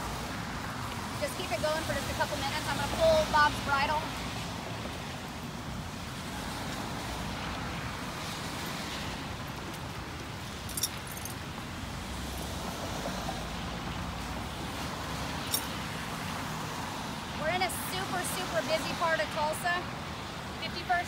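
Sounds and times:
passing vehicle rumble: 0:00.0 - 0:10.2
rain: 0:00.0 - 0:21.0
traffic on a wet street: 0:00.0 - 0:21.0
horse bridle jingling: 0:10.7 - 0:11.4, 0:15.4 - 0:15.8.

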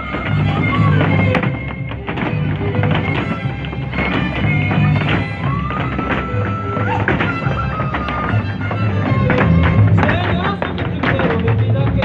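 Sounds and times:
feet stamping on stage floor: 0:00.0 - 0:12.0
folk dance music: 0:00.0 - 0:12.0.

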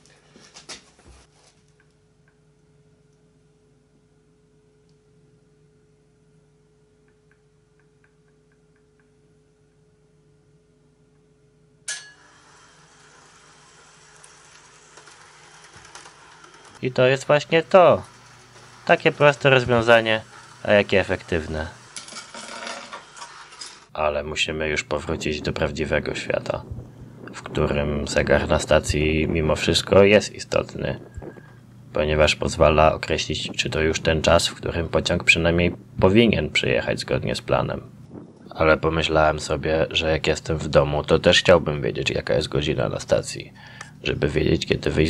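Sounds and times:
faint steady hum: 0:00.0 - 0:45.0
model train motor whirring: 0:12.2 - 0:23.9
dull low thump: 0:25.5 - 0:27.8, 0:38.1 - 0:38.6.

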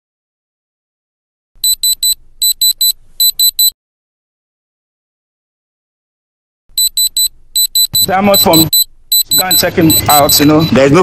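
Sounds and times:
diamond tester beeping: 0:01.6 - 0:03.7, 0:06.7 - 0:10.9.

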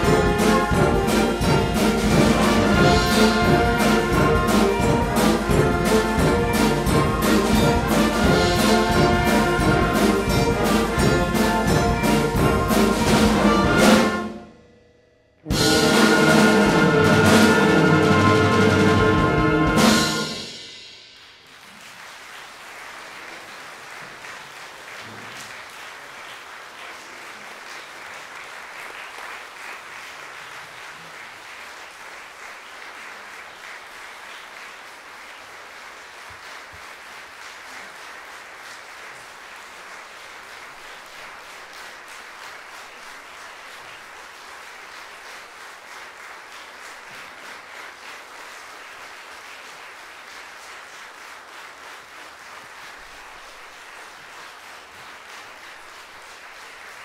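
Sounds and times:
large audience applauding: 0:00.0 - 0:14.3, 0:21.2 - 0:57.0.

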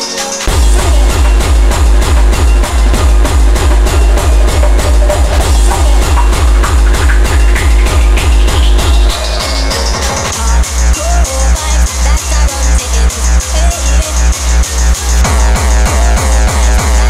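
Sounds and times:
rising synth sweep: 0:00.5 - 0:10.3
pounding kick drum: 0:00.5 - 0:17.0
synth stabs: 0:00.5 - 0:17.0.

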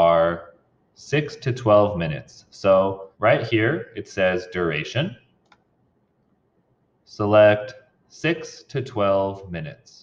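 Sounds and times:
computer mouse click: 0:05.4 - 0:05.7.

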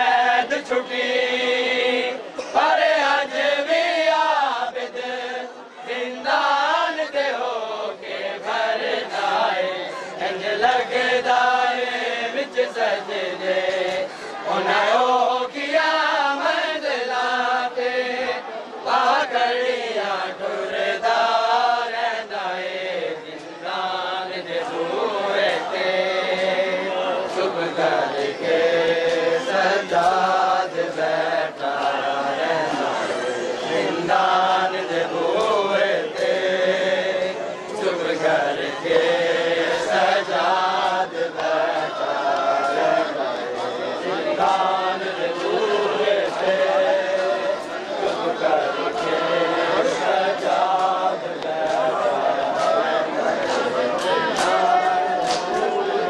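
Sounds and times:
sharp slaps: 0:53.5 - 0:54.6, 0:55.2 - 0:55.7.

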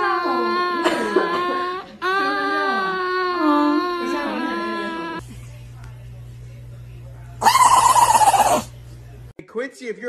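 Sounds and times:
small dog howling: 0:07.4 - 0:08.7.

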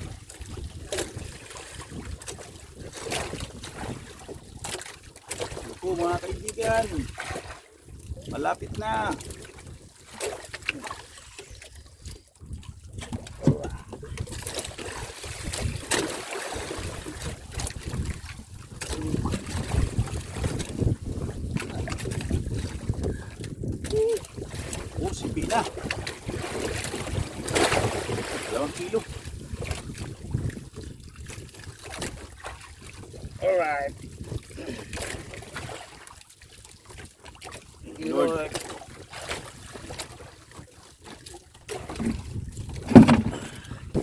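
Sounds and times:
wind on microphone: 0:00.0 - 0:04.8, 0:05.5 - 0:35.8, 0:41.7 - 0:44.0
water lapping against boat hull: 0:00.0 - 0:44.0.

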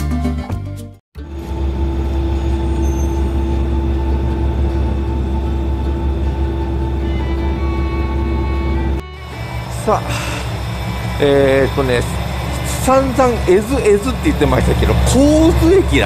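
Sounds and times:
diesel railcar engine rumbling: 0:01.2 - 0:16.0.

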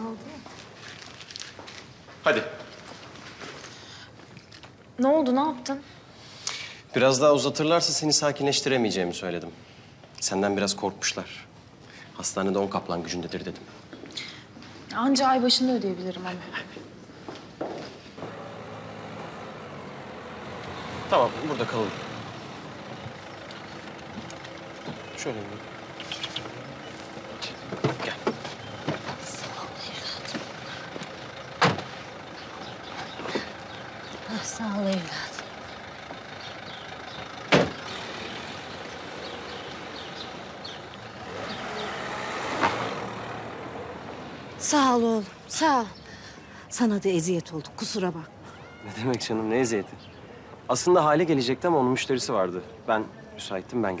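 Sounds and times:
street noise: 0:00.0 - 0:54.0
car engine running: 0:18.2 - 0:45.0
car door slamming: 0:31.6 - 0:31.9, 0:37.5 - 0:37.8.

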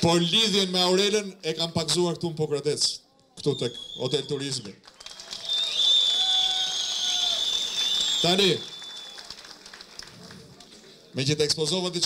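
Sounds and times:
high-pitched whistle: 0:03.4 - 0:04.4, 0:05.4 - 0:09.2
audience applauding: 0:04.8 - 0:11.1.

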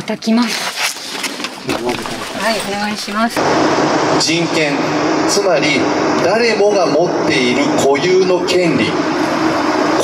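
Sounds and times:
voices talking: 0:01.6 - 0:03.5.

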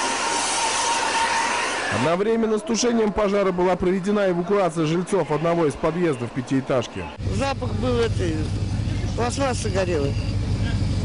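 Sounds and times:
faint high whine: 0:07.2 - 0:11.0.

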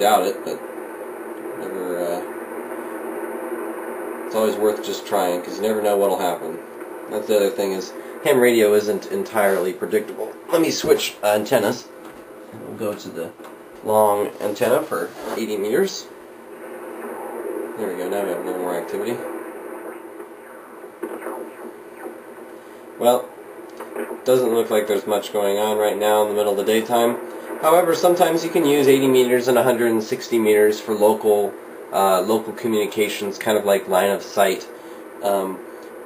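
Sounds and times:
radio static hiss: 0:00.0 - 0:36.0
gliding radio swell: 0:04.1 - 0:11.9, 0:13.9 - 0:23.2, 0:24.1 - 0:35.4.

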